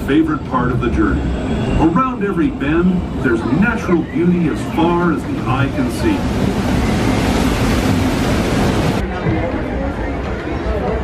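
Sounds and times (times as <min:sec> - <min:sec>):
low rumble of ride vehicle: 0:00.0 - 0:11.0.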